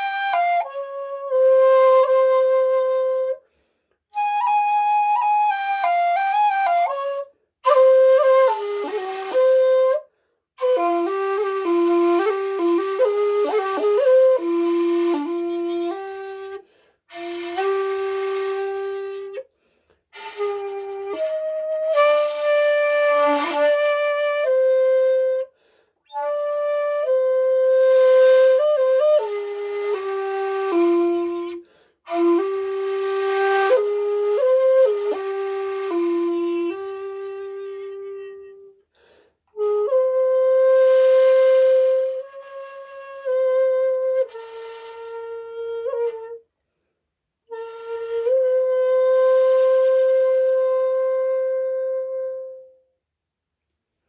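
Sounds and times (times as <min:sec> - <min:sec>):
bamboo flute solo: 0:00.0 - 0:38.8, 0:39.5 - 0:46.5, 0:47.5 - 0:52.9.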